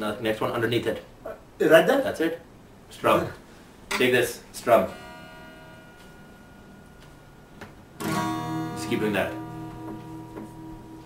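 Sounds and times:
acoustic guitar chord ringing: 4.6 - 11.0.

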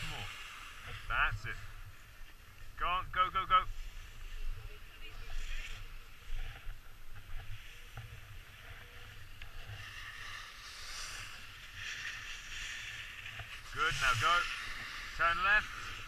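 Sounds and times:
skis scraping over packed snow: 0.0 - 16.0.

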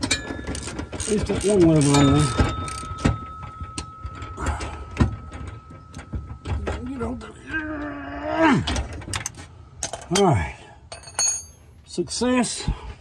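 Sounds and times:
hand tools clicking on metal: 0.0 - 6.9.

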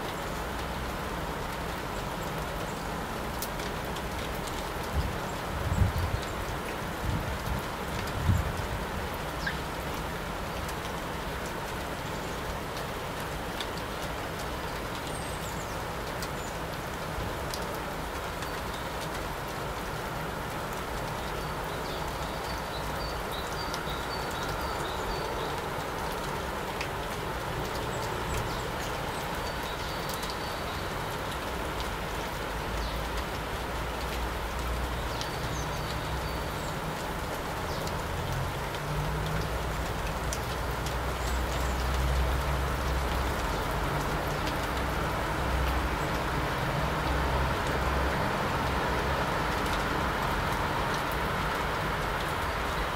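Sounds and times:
outdoor background noise: 0.0 - 52.9.

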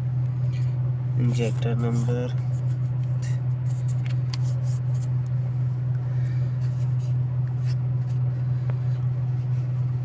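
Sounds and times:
engine droning: 0.0 - 10.0.

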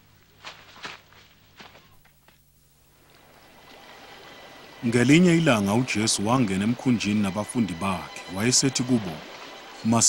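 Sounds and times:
soft footsteps: 0.0 - 2.5.

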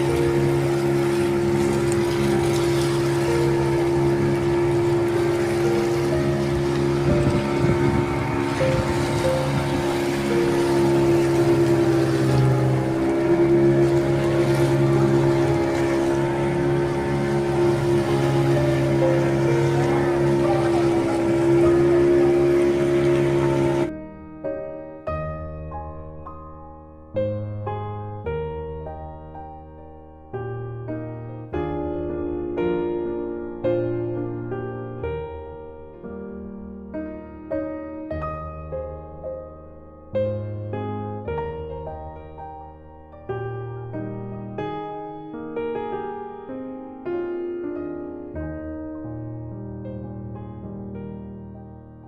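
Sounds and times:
motorboat engine running: 0.0 - 23.9
rushing water: 0.0 - 23.9
wind noise: 1.4 - 23.9.

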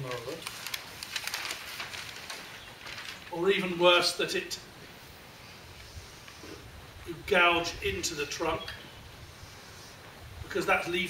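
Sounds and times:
paper sheets rustling: 0.0 - 3.8.

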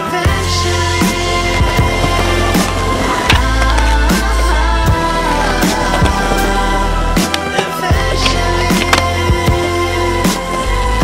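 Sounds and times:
skateboard grinding and rolling: 0.3 - 11.0
skateboard clacks: 1.0 - 10.7.

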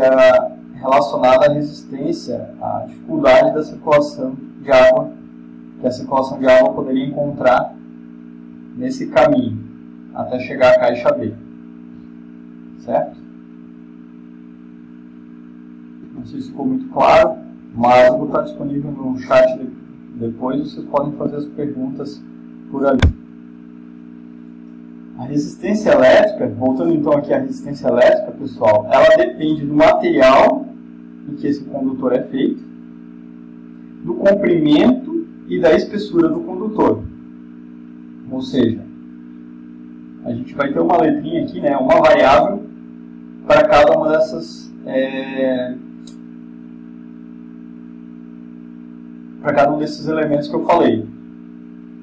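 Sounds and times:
low steady hum of held tones: 0.0 - 52.0
sharp click: 23.0 - 23.4, 46.0 - 46.3.

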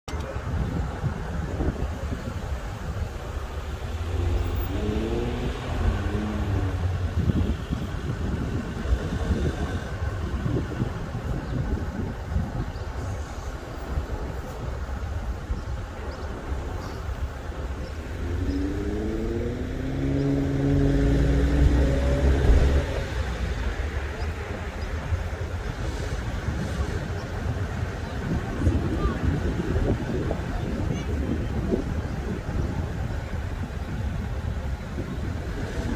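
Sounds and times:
street traffic: 0.0 - 35.9
wind rumbling on microphone: 0.1 - 35.9
car accelerating past: 3.9 - 7.5, 18.1 - 23.7.

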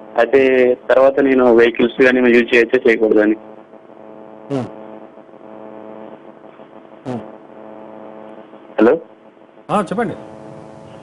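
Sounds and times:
telephone line buzzing hum: 0.0 - 11.0
person speaking: 4.5 - 4.8, 7.0 - 7.4.

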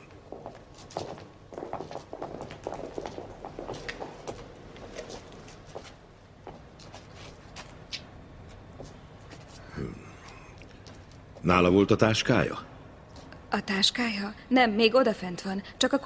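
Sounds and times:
footsteps on hard floor: 0.3 - 7.7.

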